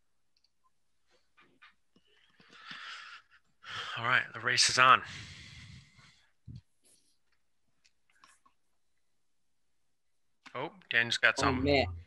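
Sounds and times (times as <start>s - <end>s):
breathing on microphone: 2.0s - 4.0s, 5.0s - 7.2s.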